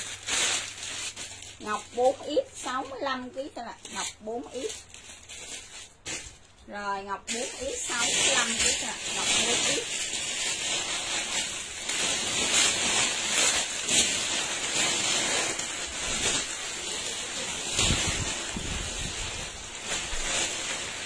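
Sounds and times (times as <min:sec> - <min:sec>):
clothing fabric rustling: 0:00.0 - 0:06.6, 0:07.3 - 0:21.0.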